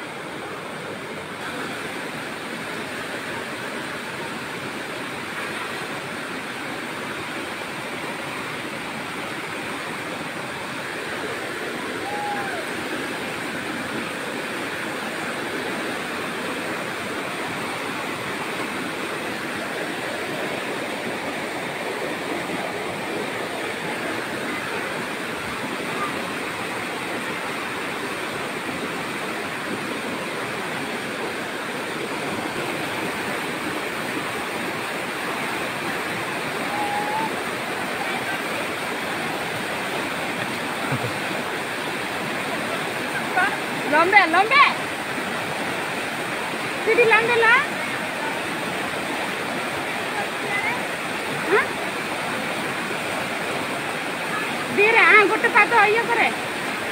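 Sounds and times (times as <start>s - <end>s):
river rushing: 0.0s - 56.9s.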